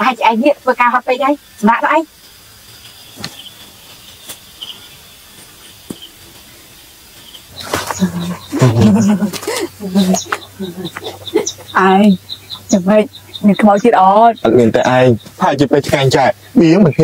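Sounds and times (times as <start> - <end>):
people talking: 0.0 - 2.1, 7.6 - 17.0
faint insect chirps: 0.0 - 17.0.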